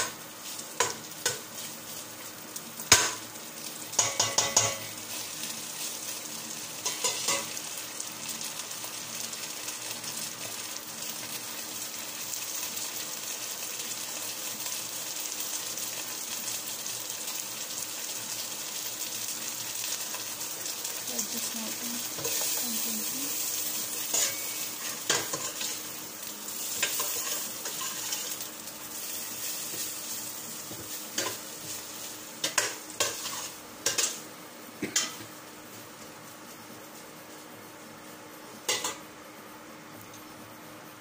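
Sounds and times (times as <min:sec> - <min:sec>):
food sizzling in a pot: 0:00.0 - 0:41.0
spoon tapping a pot: 0:04.0 - 0:04.9
metal spoon stirring and scraping: 0:24.1 - 0:25.8, 0:26.8 - 0:28.4.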